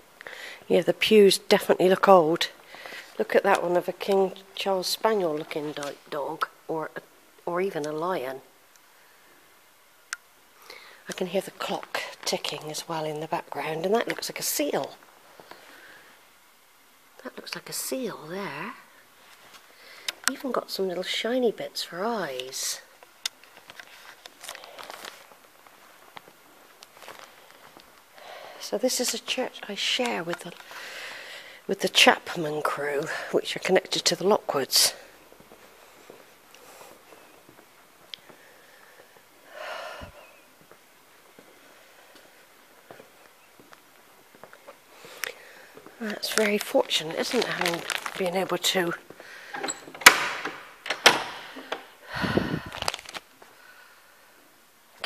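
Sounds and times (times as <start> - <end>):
soft rustle: 18.8 - 21.1, 22.4 - 30.8, 40.1 - 49.5, 52.1 - 53.8
quiet footsteps: 35.3 - 39.3, 40.2 - 50.1.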